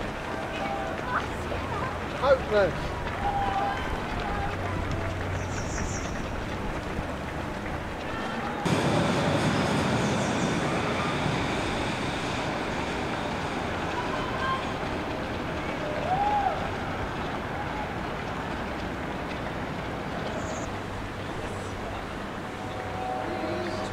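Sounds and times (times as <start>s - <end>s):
distant crowd voices: 0.0s - 23.9s
outdoor street noise: 0.0s - 23.9s
train rumbling on a viaduct: 0.0s - 23.9s.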